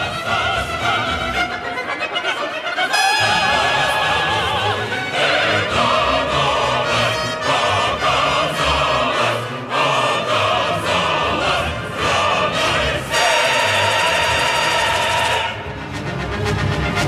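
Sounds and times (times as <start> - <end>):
opera chorus and orchestra: 0.0 - 17.0.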